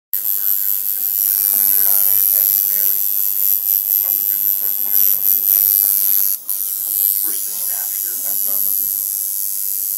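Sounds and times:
tattoo machine buzzing: 0.2s - 9.9s.

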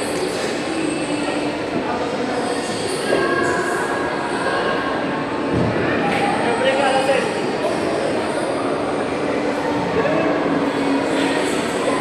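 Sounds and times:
busy indoor ice rink din: 0.0s - 12.0s.

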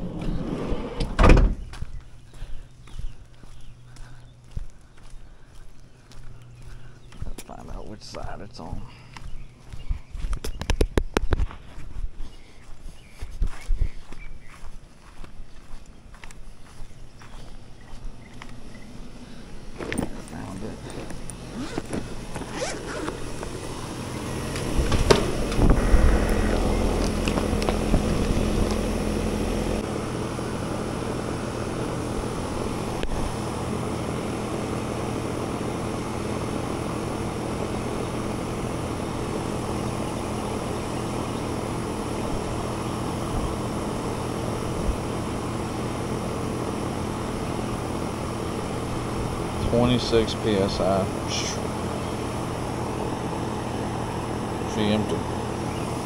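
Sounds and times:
air conditioning unit humming: 0.0s - 56.0s.

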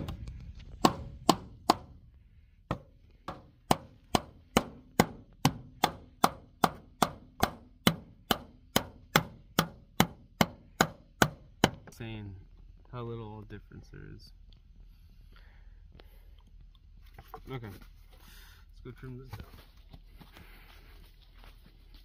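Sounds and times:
hammer striking wood: 0.0s - 2.0s, 2.7s - 11.9s.

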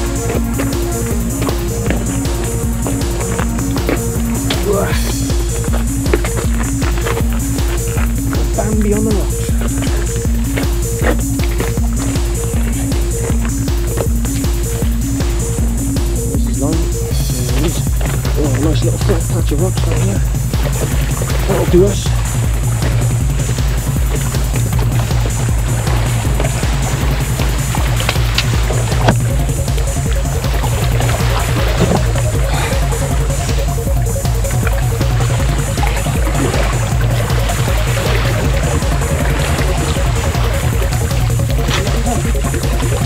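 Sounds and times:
electronic music with driving beat: 0.0s - 43.0s.

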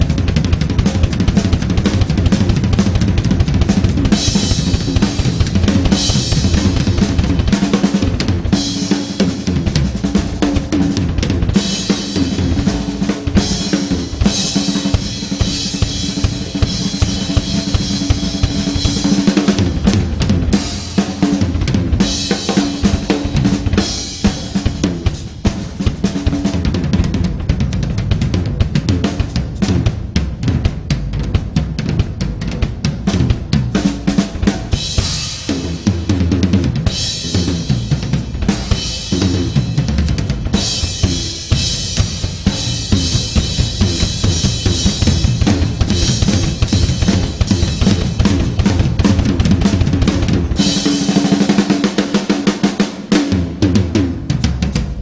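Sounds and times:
drum kit groove: 0.0s - 55.0s.

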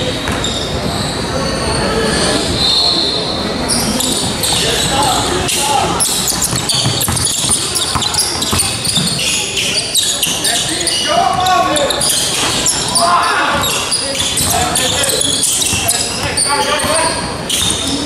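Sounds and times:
indistinct echoing voices: 0.0s - 18.0s
sneakers squeaking: 0.0s - 18.0s
basketball bouncing on hardwood floor: 6.4s - 9.2s.

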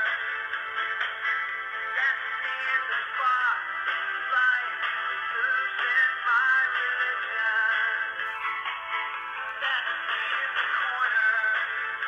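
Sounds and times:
polyphonic phone ringtone melody: 7.7s - 11.3s.

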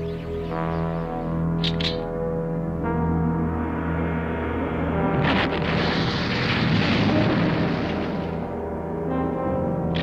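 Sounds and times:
sustained music chords: 0.0s - 10.0s
energy blast rushing rumble: 4.8s - 8.4s.

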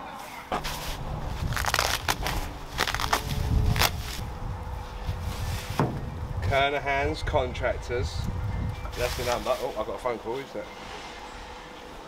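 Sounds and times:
plastic packaging crinkling: 0.5s - 4.2s.

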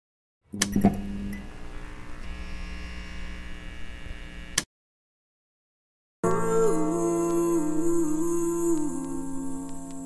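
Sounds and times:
neon sign electrical hum: 0.6s - 4.6s.

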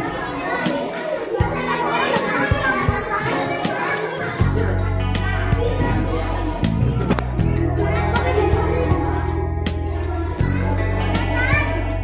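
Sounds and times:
background music: 0.0s - 12.0s
children chattering: 0.0s - 12.0s
steady bass line: 4.4s - 12.0s.

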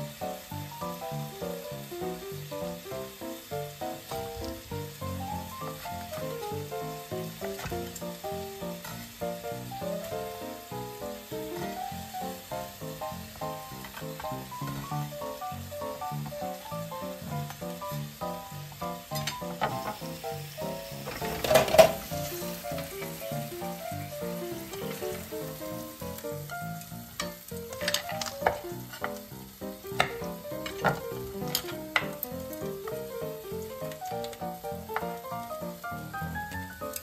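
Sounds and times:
food sizzling in a pan: 0.0s - 37.0s.

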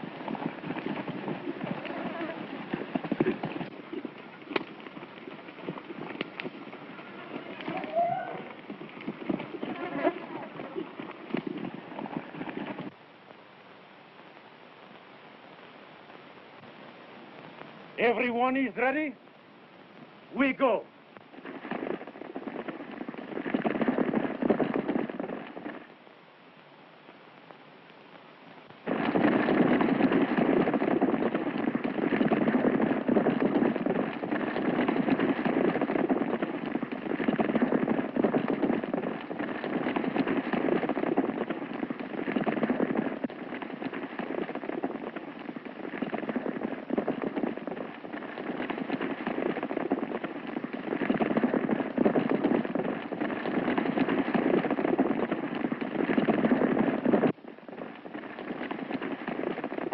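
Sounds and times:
horses galloping hoofbeats: 0.0s - 13.0s, 20.0s - 59.9s.

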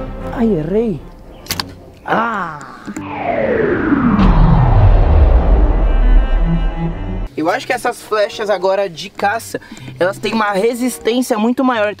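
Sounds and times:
low rumble: 3.0s - 7.3s
tone sliding down: 3.0s - 7.3s.

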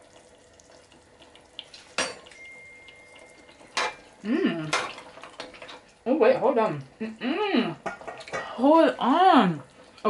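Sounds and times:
pot bubbling: 0.0s - 10.0s
metal spoon clinking on pot: 2.0s - 4.1s.

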